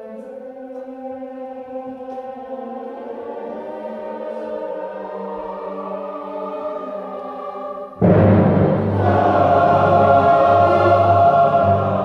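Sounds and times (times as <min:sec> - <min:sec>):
choir singing held chords: 0:00.0 - 0:12.0
loud full music passage: 0:02.0 - 0:12.0.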